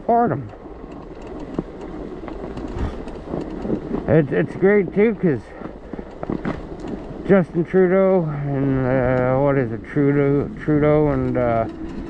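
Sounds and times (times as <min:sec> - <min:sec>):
bike tyres rolling on snow: 0:00.0 - 0:12.0
low bump: 0:01.6 - 0:04.3.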